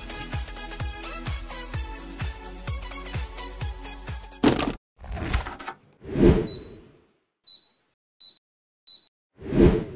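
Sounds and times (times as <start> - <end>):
short high beeps: 6.5 - 6.8, 7.5 - 9.1
whooshes: 9.4 - 9.9.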